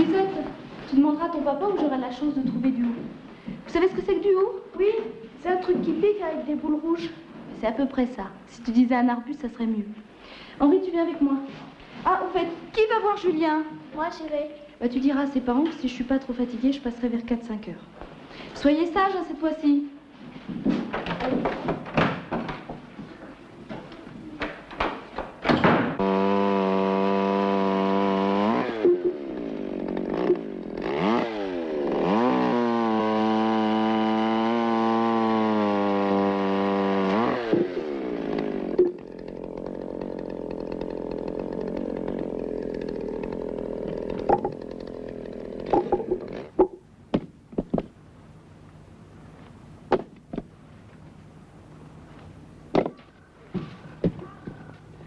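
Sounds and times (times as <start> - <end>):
chainsaw cutting log: 24.5 - 47.9
clicks and knocks: 44.1 - 44.6.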